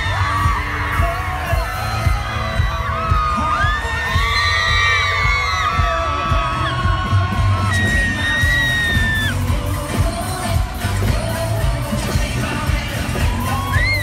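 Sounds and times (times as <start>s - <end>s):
fans screaming: 0.0s - 9.6s, 13.2s - 14.0s
live pop band music: 0.0s - 14.0s.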